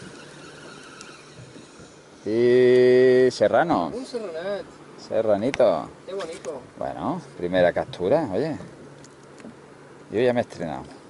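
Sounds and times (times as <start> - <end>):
faint boat background noise: 0.0 - 11.0.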